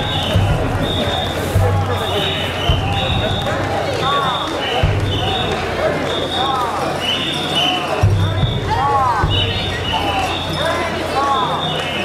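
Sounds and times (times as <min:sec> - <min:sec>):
whistle blasts: 0:00.0 - 0:12.0.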